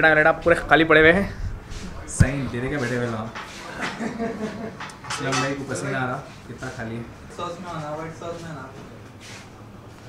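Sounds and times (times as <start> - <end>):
plates and cutlery clinking: 2.8 - 6.1.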